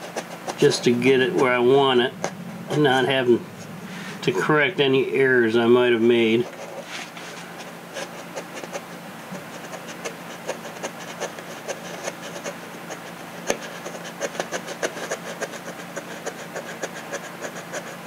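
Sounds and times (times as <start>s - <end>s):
low hum: 0.0s - 9.7s.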